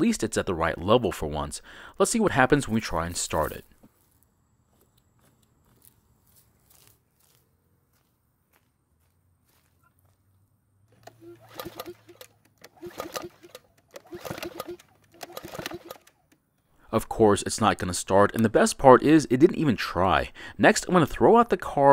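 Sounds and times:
mower engine cranking: 0:10.9 - 0:16.6.

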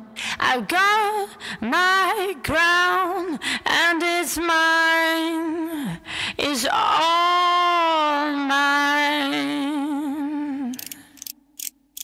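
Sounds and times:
sharp mechanical clicks: 0:10.7 - 0:12.0.

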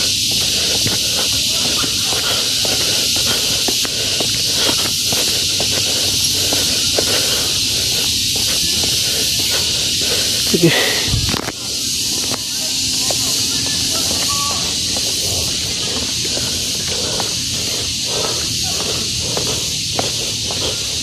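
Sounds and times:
footsteps on concrete steps: 0:00.0 - 0:21.0
insects droning: 0:00.0 - 0:21.0.

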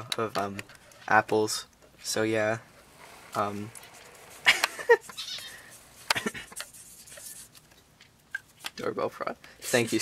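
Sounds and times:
marker squeaking on paper: 0:03.0 - 0:07.7, 0:09.6 - 0:10.0.

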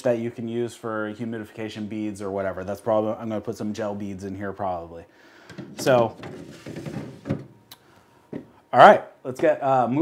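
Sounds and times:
drawer knocking into place: 0:05.5 - 0:07.6
wooden drawer sliding closed: 0:05.5 - 0:07.6.

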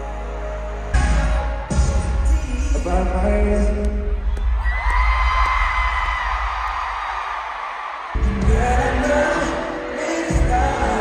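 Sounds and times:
concert music with bass: 0:00.0 - 0:06.8, 0:08.2 - 0:11.0
crowd screaming and cheering: 0:00.0 - 0:11.0.

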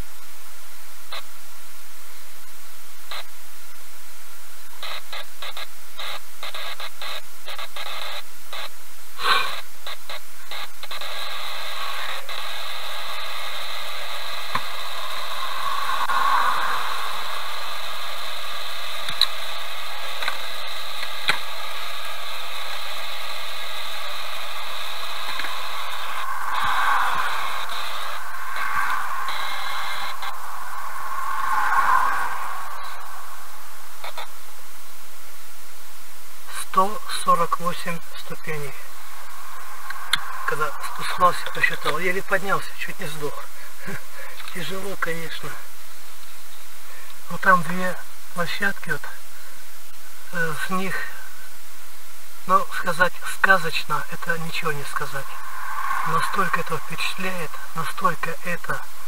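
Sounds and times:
buzzing tone: 0:00.0 - 0:36.5, 0:37.8 - 0:43.3, 0:54.2 - 0:59.0
loud static hiss: 0:00.0 - 0:59.0
clicks: 0:19.0 - 0:19.4, 0:20.1 - 0:20.4, 0:25.2 - 0:26.8.

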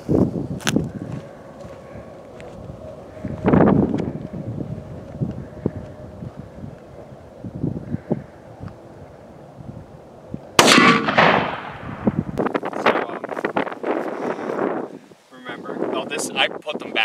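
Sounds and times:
wind on microphone: 0:00.0 - 0:17.0
rifle shot boom: 0:10.6 - 0:12.4.

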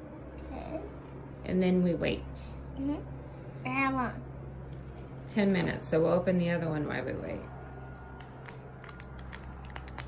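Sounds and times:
plastic spoon clicking on beads: 0:08.2 - 0:10.0.

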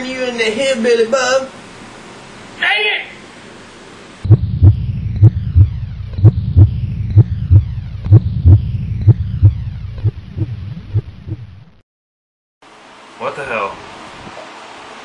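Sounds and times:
steady low hum: 0:04.1 - 0:11.8
heartbeat double thumps: 0:04.2 - 0:11.8.

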